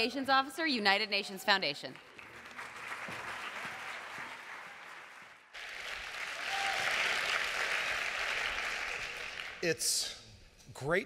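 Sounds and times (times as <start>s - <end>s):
audience applauding: 2.0s - 9.6s.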